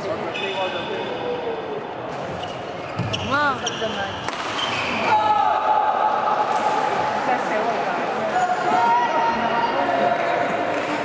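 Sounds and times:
voices in a hall: 0.0 - 11.0
shoes squeaking on court floor: 2.1 - 5.1
racket striking shuttlecock: 4.2 - 4.7.

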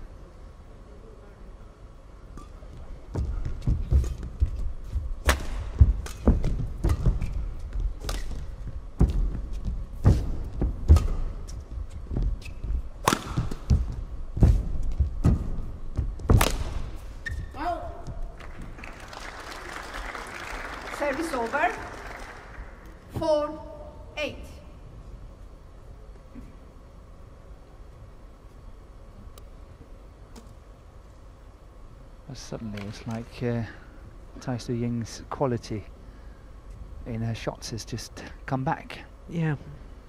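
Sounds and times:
thudding footfalls on court: 2.8 - 16.8
racket striking shuttlecock: 5.2 - 7.4, 13.0 - 13.9, 16.3 - 16.9
shoe squeaks: 11.9 - 13.0, 17.1 - 17.7.

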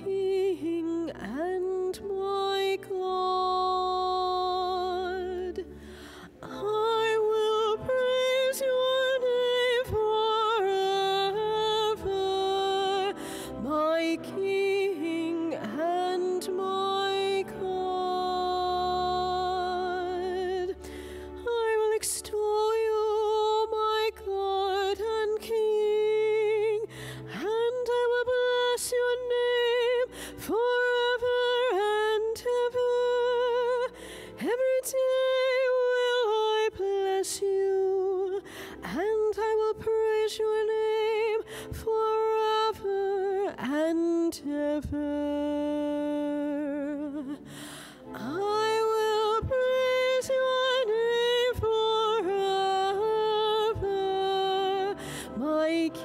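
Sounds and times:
woman singing into a microphone: 0.0 - 56.0.

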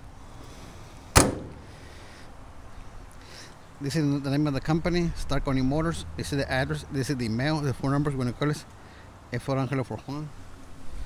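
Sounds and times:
metal door slamming shut: 1.2 - 1.7.

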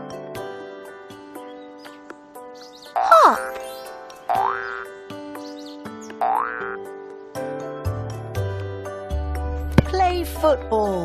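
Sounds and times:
light children's music: 0.0 - 11.0
cartoon boing sound effects: 3.0 - 3.5, 4.3 - 4.9, 6.2 - 6.8.

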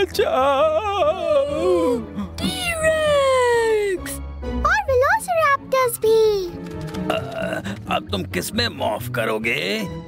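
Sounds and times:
cartoon character cry: 2.4 - 3.6.

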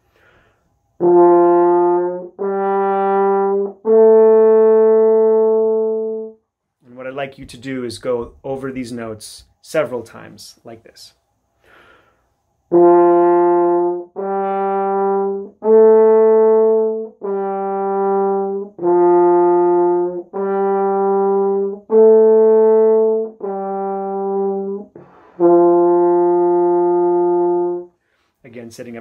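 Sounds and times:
french horn notes: 1.0 - 7.0, 12.7 - 28.2.

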